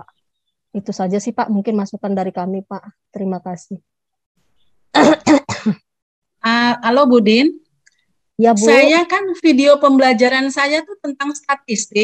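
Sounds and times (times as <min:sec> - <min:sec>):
person coughing: 0:05.0 - 0:05.8
woman speaking: 0:06.4 - 0:07.7, 0:08.4 - 0:12.0.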